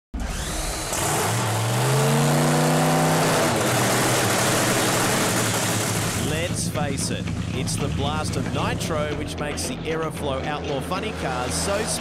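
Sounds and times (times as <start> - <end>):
drag racing engine running loud: 0.2 - 12.0.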